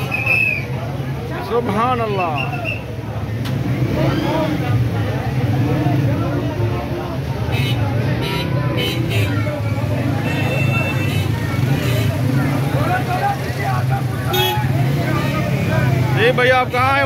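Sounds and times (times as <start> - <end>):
crowd voices: 0.0 - 17.0
motorbike engines humming: 0.0 - 17.0.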